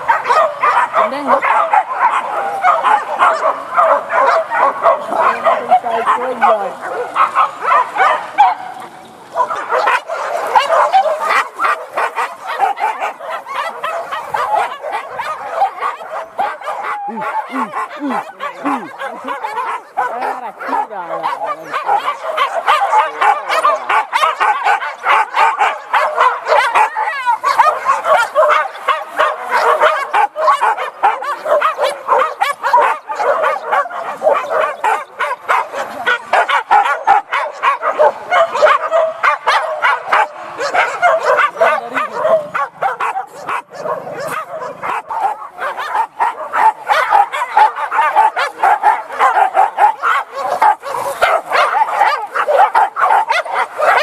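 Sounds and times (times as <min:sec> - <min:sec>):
dogs barking and yelping: 0:00.0 - 0:54.0.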